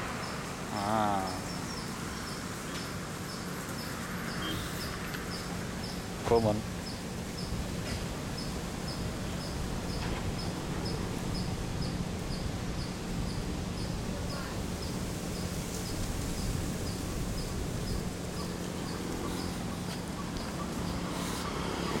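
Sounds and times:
insect chirping: 0.0 - 6.2, 8.3 - 22.0
outdoor background noise: 0.0 - 22.0.

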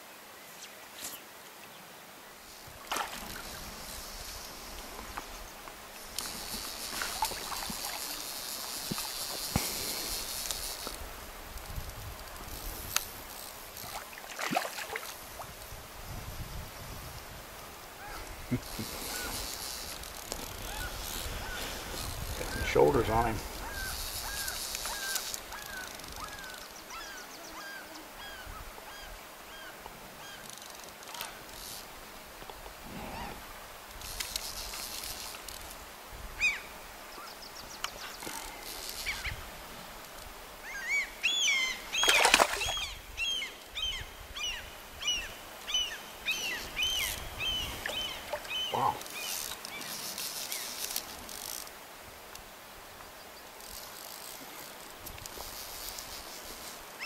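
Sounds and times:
birds calling: 18.0 - 31.5, 40.6 - 50.8.

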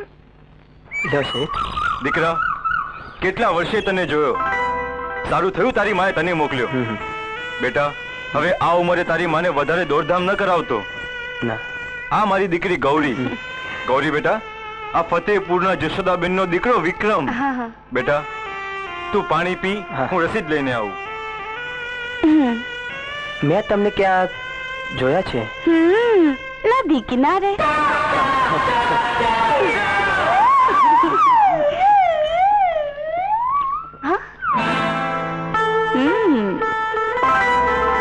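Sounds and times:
steady background tone: 0.0 - 28.1
gliding melodic film music: 4.0 - 7.0.

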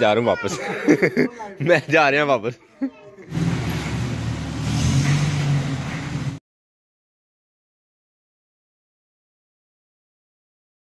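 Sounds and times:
van engine running: 3.3 - 6.4.

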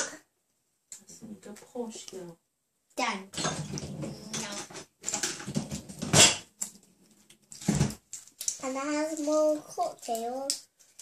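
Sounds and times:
young children's voices: 8.5 - 10.7.

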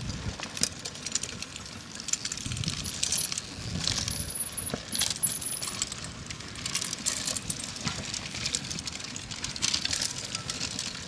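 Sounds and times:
mountain bikes clattering over rocks: 0.0 - 11.0.

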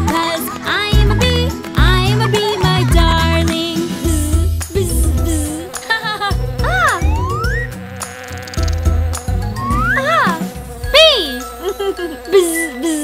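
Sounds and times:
bouncy children's music: 0.0 - 13.0
cartoon bee buzzing: 4.1 - 13.0
swooping sound effects: 6.6 - 7.8, 9.4 - 11.0.

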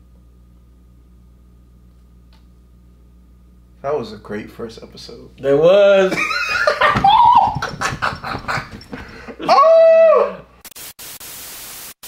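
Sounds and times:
static hiss: 10.6 - 12.0.

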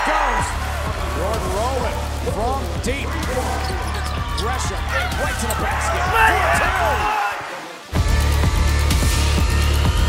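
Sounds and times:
crowd noise: 0.0 - 10.0
sneaker squeaks on hardwood: 3.5 - 4.4
music with steady bass: 7.9 - 10.0.

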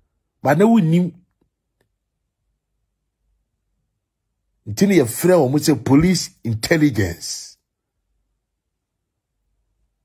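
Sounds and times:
man's voice: 0.4 - 1.2, 4.7 - 7.6.

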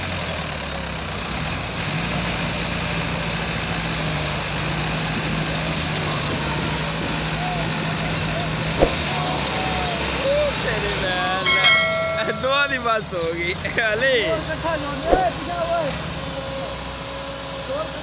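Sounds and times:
sharp knock: 8.8 - 9.0, 15.1 - 15.3.

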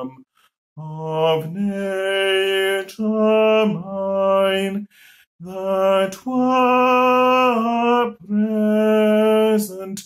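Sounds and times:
man singing a hymn: 0.0 - 0.2, 0.8 - 10.0.

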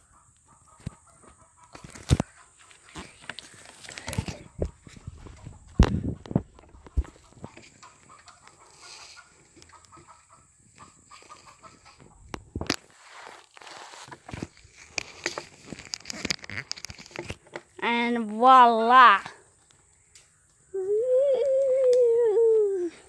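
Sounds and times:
rubbing and rustling: 1.7 - 17.7
phone microphone handling noise: 2.9 - 7.6, 12.0 - 17.6.

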